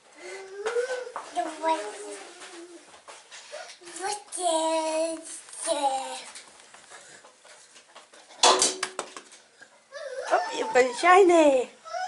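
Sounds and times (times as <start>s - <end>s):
ball bouncing and rolling: 7.8s - 9.4s.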